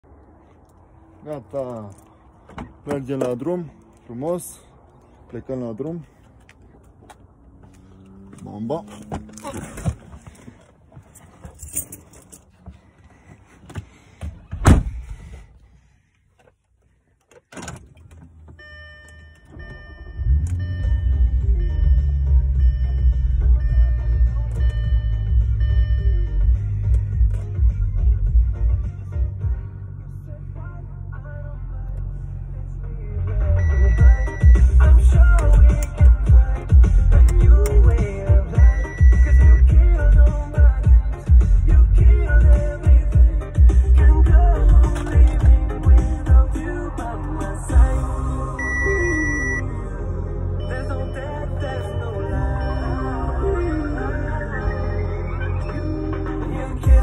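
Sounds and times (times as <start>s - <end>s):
car engine starting and idling: 0.0s - 57.0s
thunk: 14.2s - 15.1s
light thud: 14.5s - 15.2s
loud music with heavy bass beat: 33.6s - 49.6s, 52.1s - 57.0s.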